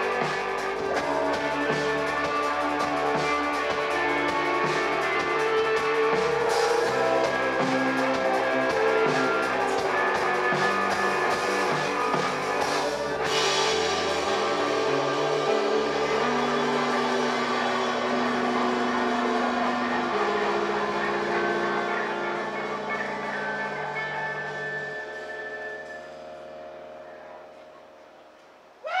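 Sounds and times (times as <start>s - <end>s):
bass guitar notes: 0.0s - 29.0s
electric guitar chords: 0.0s - 29.0s.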